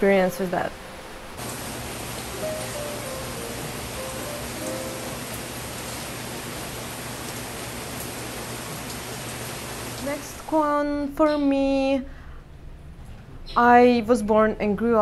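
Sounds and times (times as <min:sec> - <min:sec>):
heavy rain pouring: 0:00.0 - 0:10.7.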